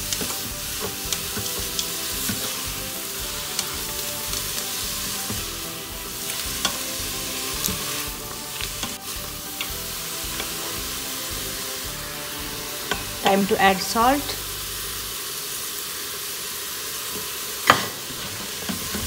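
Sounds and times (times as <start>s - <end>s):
spatula scraping metal pot: 0.0s - 13.7s
leaves and onions sizzling in pot: 0.0s - 19.0s.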